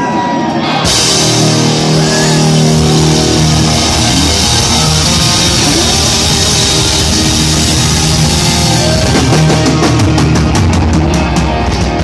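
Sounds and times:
electric guitars sustained chord: 0.0s - 12.0s
cymbals washing: 0.9s - 10.1s.

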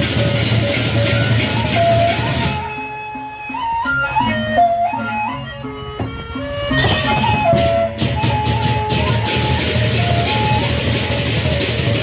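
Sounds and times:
large barrel drums beaten: 0.0s - 2.6s, 6.8s - 12.0s
wind instrument melody: 0.0s - 12.0s.

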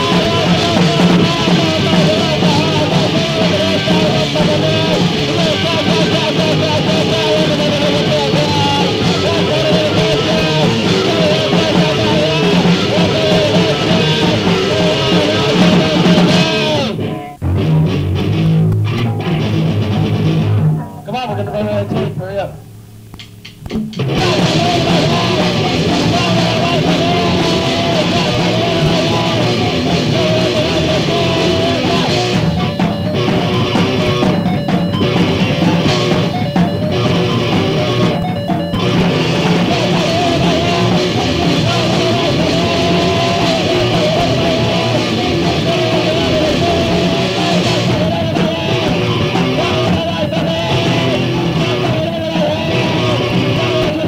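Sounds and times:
low guitar riff: 0.0s - 54.0s
rock band playing: 0.0s - 54.0s.

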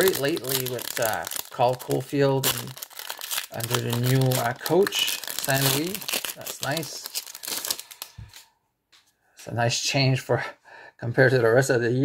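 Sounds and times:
foil wrapper crinkling: 0.0s - 8.4s.

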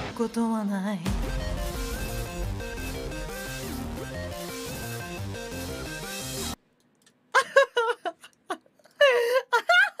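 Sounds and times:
woman talking: 0.0s - 1.1s.

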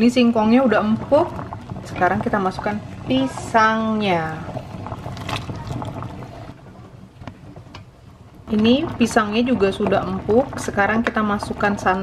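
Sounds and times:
bubbles popping: 0.0s - 12.0s
syrup bubbling at a boil: 0.0s - 12.0s.

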